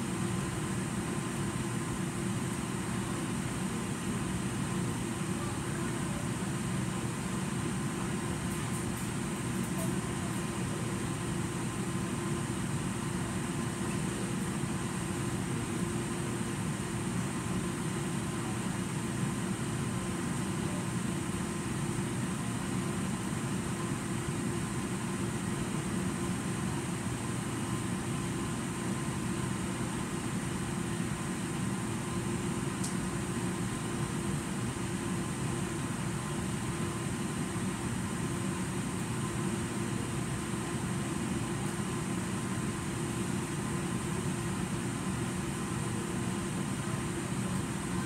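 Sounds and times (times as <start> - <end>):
ventilation fan hum: 0.0 - 48.0
faint tick: 32.8 - 33.0.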